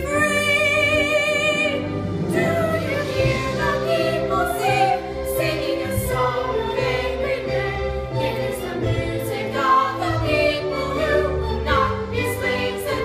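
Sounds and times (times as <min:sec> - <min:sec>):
girls singing in unison: 0:00.0 - 0:13.0
instrumental accompaniment: 0:00.0 - 0:13.0.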